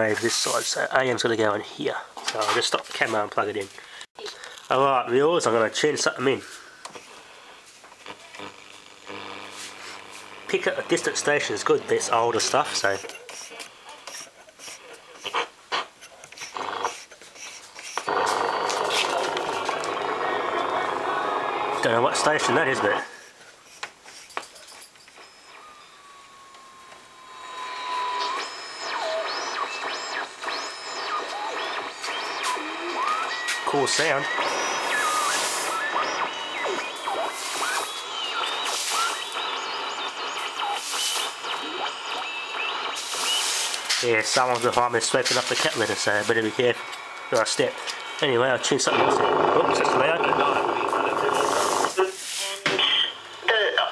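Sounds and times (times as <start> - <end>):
radio static bursts: 4.6 - 23.4, 25.2 - 53.9
distant radio station playing: 7.4 - 17.1, 18.0 - 23.3, 25.2 - 53.9.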